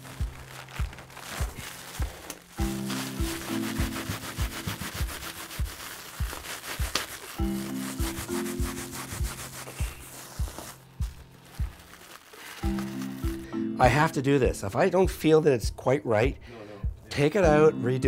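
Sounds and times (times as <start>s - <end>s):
bubble wrap rustling: 0.0s - 13.5s
background music with beat: 0.0s - 18.0s.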